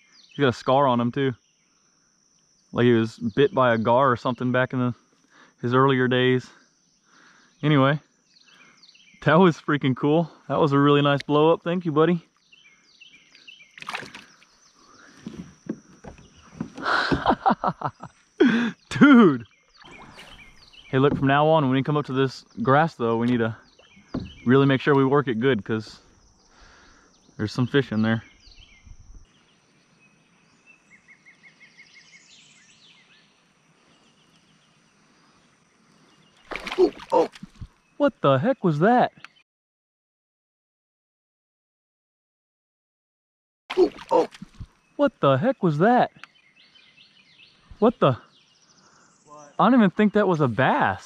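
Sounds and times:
birds chirping: 0.0 - 39.4, 43.7 - 51.0
fish splashing into water: 13.8 - 14.5, 36.4 - 37.7, 43.7 - 44.7
water sloshing: 13.8 - 18.0, 19.8 - 21.7, 36.4 - 37.8, 43.7 - 44.8
light knocks against kayak: 24.1 - 24.5.

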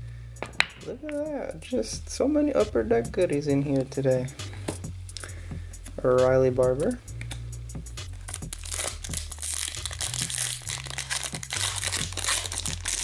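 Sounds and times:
background music with bass: 0.0 - 13.0
trading cards being shuffled: 8.0 - 13.0.

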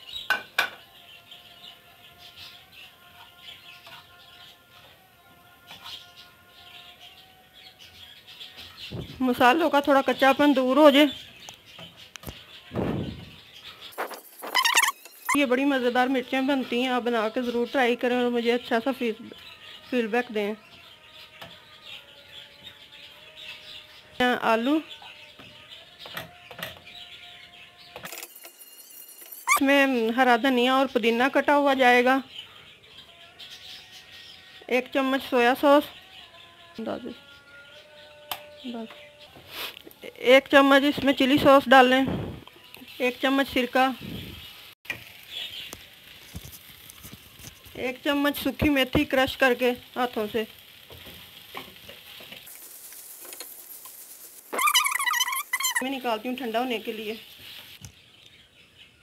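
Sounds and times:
filling sizzling in frying pan: 40.6 - 58.1.

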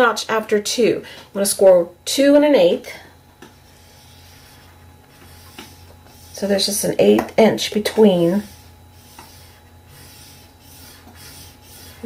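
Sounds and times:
stylus scraping cardstock: 3.5 - 6.8, 7.9 - 12.0.

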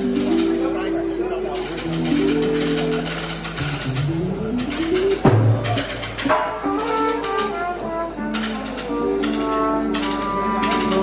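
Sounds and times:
live band music: 0.0 - 11.0
sharp percussion hits: 1.5 - 11.0.

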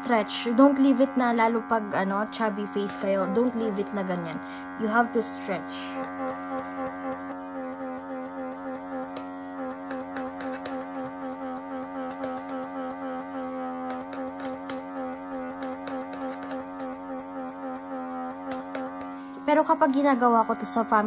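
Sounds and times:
suction wand buzzing hum: 0.0 - 21.0.

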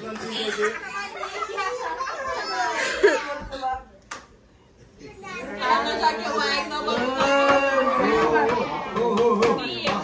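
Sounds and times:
adults and children talking: 0.0 - 10.0.

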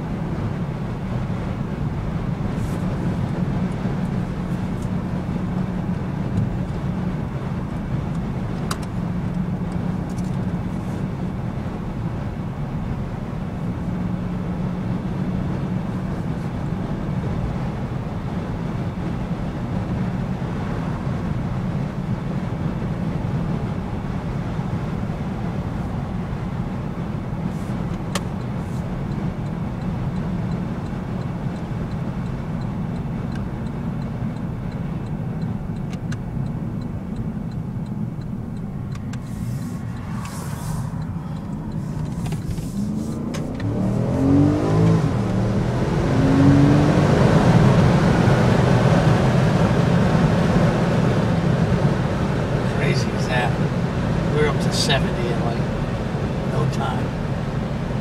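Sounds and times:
car engine drone inside cabin: 0.0 - 58.0
road noise: 0.0 - 58.0.

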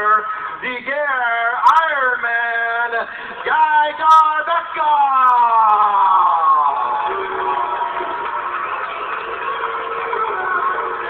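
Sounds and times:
arena crowd cheering: 3.4 - 11.0
ring announcer calling out: 9.8 - 11.0.

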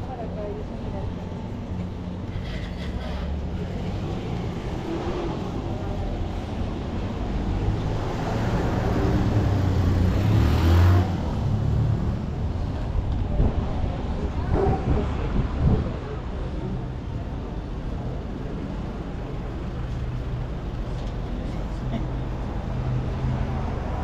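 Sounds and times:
city street noise: 0.0 - 24.0
vehicle engine rumble: 0.0 - 24.0.

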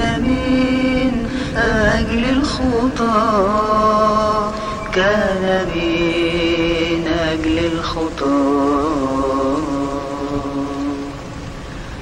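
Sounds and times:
low steady rumble: 0.0 - 12.0
person singing a hymn: 0.0 - 12.0.

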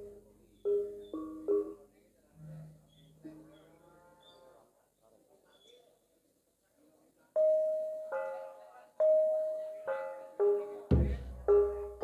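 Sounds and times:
gamelan bronze notes: 7.4 - 12.0.

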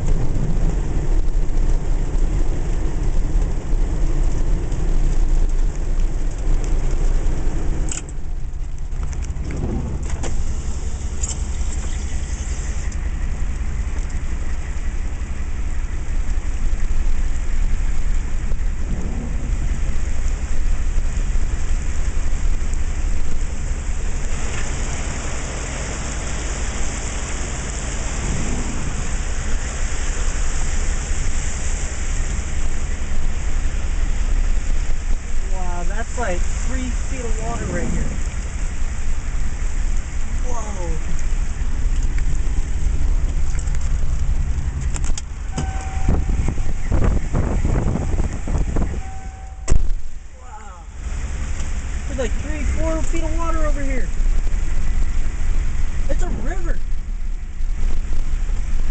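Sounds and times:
rain: 0.0 - 58.9
rushing flood water: 0.0 - 58.9
steady low rumble: 0.0 - 58.9.

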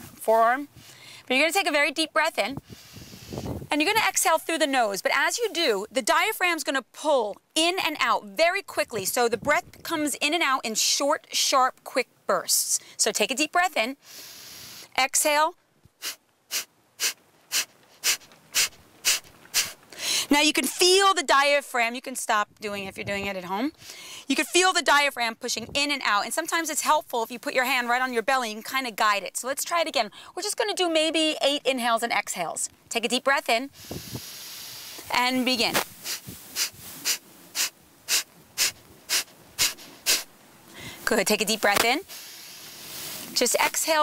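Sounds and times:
woman exhaling sharply through nose: 2.6 - 3.6, 14.0 - 14.9, 16.0 - 20.3, 33.7 - 35.1, 36.0 - 41.1.

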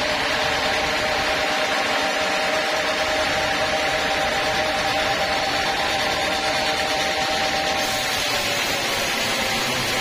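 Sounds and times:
band saw cutting log: 6.3 - 10.0.

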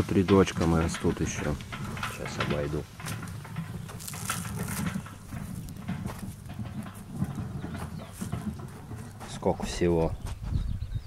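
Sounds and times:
wind rumble on microphone: 0.8 - 11.0
footsteps on soft soil: 1.4 - 10.7.

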